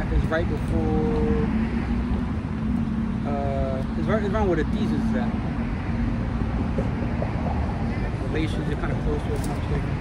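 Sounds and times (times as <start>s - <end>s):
constant low hum: 0.0s - 10.0s
road traffic rumble: 0.0s - 10.0s.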